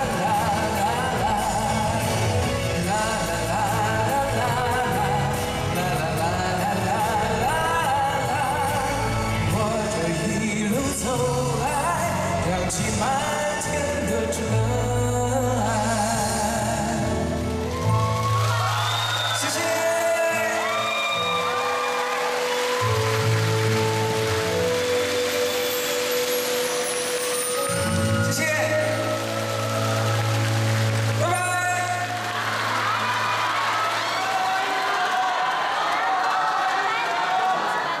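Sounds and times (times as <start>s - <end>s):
live band playing pop ballad: 0.0s - 32.9s
audience cheering and applauding: 16.1s - 38.0s.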